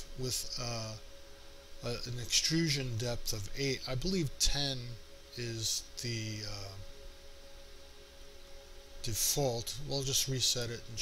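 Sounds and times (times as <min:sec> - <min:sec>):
faint background hum: 0:00.0 - 0:11.0
light hiss: 0:00.0 - 0:11.0
thin constant tone: 0:00.0 - 0:11.0.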